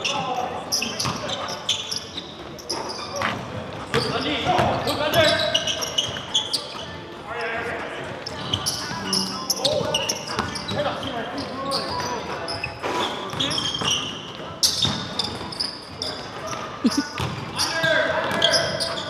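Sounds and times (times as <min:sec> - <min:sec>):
sneakers squeaking: 0:00.0 - 0:19.0
players calling out: 0:16.7 - 0:19.0
basketball bouncing: 0:17.2 - 0:17.4.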